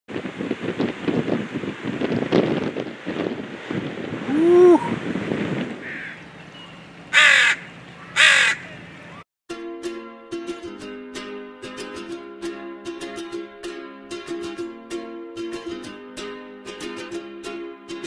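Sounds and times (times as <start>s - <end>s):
surf washing on shore: 0.1s - 6.4s
crow cawing: 5.8s - 6.2s, 7.1s - 8.8s
low arching call: 5.8s - 9.2s
ukulele music: 9.5s - 18.0s.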